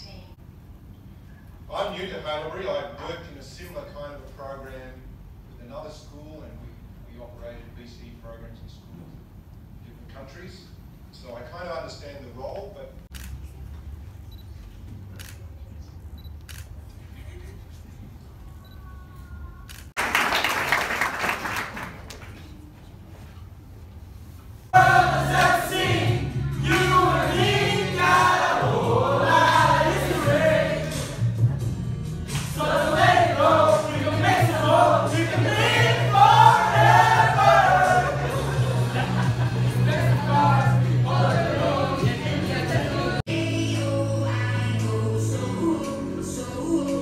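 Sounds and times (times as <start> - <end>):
group singing like a choir: 24.8 - 31.4, 32.3 - 47.0.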